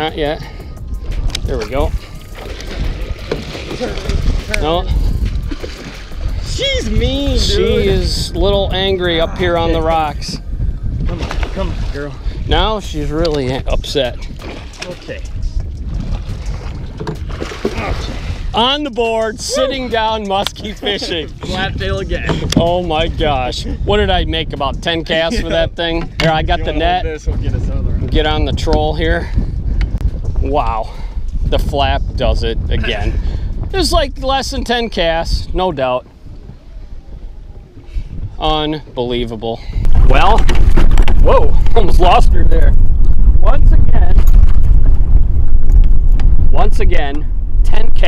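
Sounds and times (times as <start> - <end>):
wind rumble on microphone: 0.0 - 48.0
water splashing and sloshing: 0.2 - 27.0, 35.9 - 42.2
water lapping against boat hull: 0.6 - 7.3, 9.0 - 18.6.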